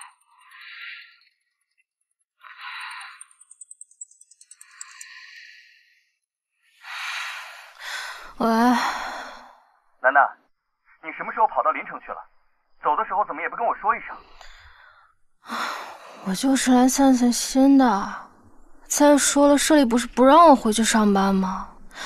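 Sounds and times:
woman sighing and breathing: 0:06.8 - 0:09.6
woman speaking: 0:08.4 - 0:09.0, 0:16.2 - 0:18.2, 0:18.9 - 0:21.8.

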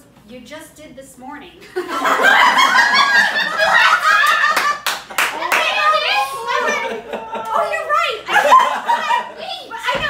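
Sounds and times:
people laughing and exclaiming: 0:01.8 - 0:10.0
sharp hand claps: 0:04.5 - 0:05.7.

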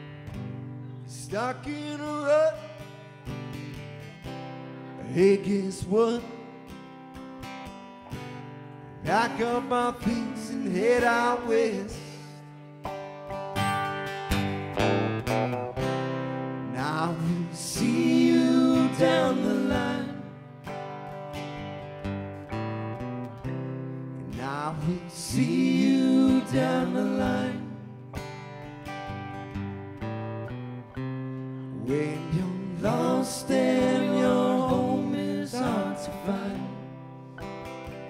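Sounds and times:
strummed acoustic guitar: 0:00.0 - 0:38.0
lead guitar solo with string bends: 0:12.8 - 0:16.7.

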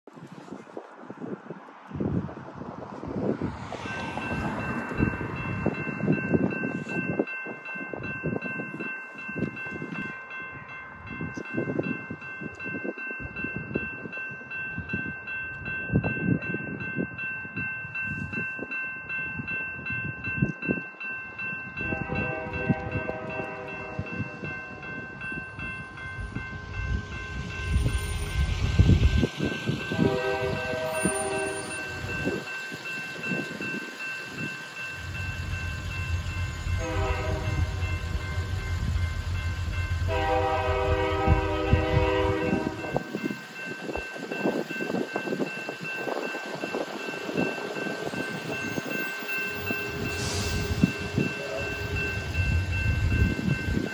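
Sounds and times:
crossing signal bell ringing: 0:03.6 - 0:53.9
locomotive horn blasts: 0:21.8 - 0:24.5, 0:29.9 - 0:32.1, 0:36.7 - 0:38.5, 0:40.1 - 0:43.0, 0:51.2 - 0:51.9
locomotive engine rumble: 0:21.9 - 0:43.0.

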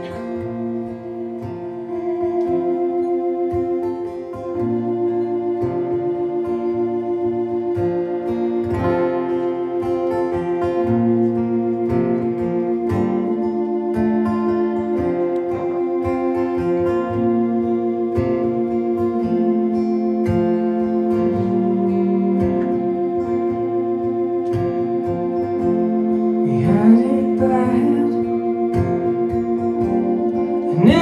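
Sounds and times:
held keyboard chord: 0:00.0 - 0:31.0
strummed acoustic guitar: 0:00.0 - 0:31.0.

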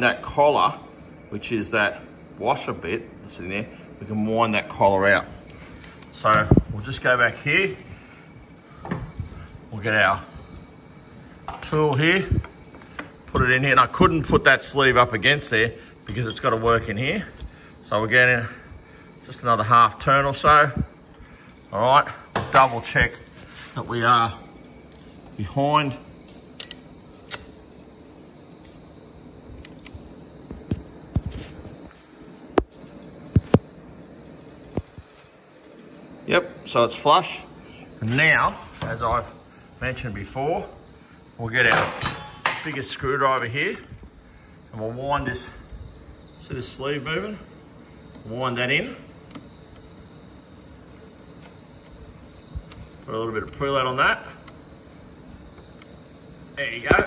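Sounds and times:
faint room hum: 0:00.0 - 0:57.0
workshop background hiss: 0:00.0 - 0:57.0
metal tools clicking and knocking: 0:41.6 - 0:42.8.

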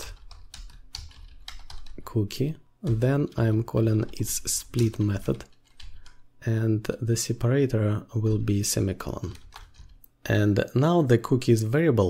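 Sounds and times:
computer keyboard typing: 0:00.0 - 0:02.2, 0:02.8 - 0:06.3, 0:08.3 - 0:10.1.

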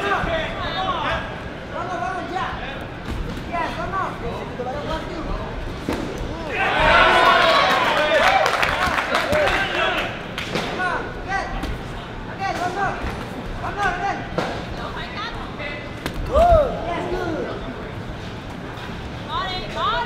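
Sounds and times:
people shouting: 0:06.3 - 0:08.6, 0:16.2 - 0:17.0.

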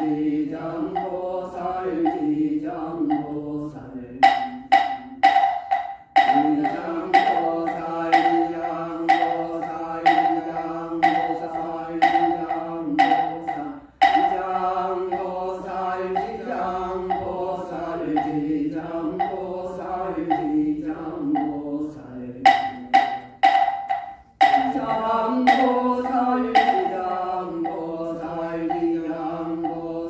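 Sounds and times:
monk chanting: 0:00.0 - 0:05.6, 0:06.2 - 0:23.0, 0:24.4 - 0:30.0
wooden fish strikes: 0:04.2 - 0:14.4, 0:22.4 - 0:27.0.

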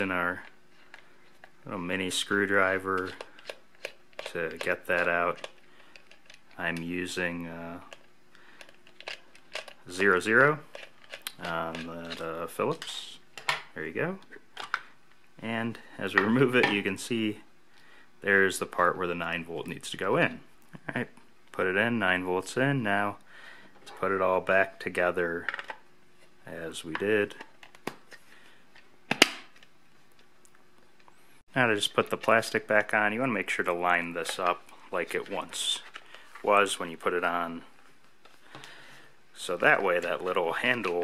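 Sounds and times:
faint handling noise: 0:32.0 - 0:41.0.

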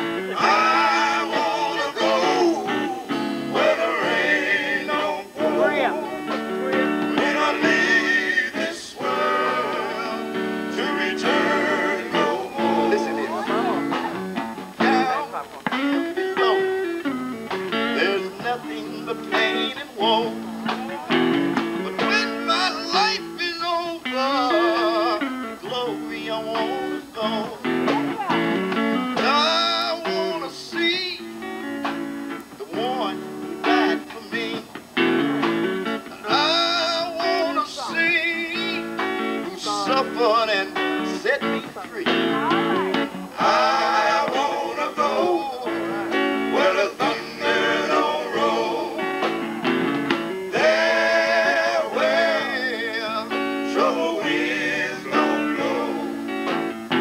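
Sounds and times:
male vocal group singing: 0:00.0 - 0:15.5, 0:16.2 - 0:16.8, 0:17.9 - 0:28.3, 0:29.2 - 0:31.4, 0:32.6 - 0:34.8, 0:36.2 - 0:49.5, 0:50.5 - 0:57.0
guitar accompaniment: 0:00.0 - 0:57.0.

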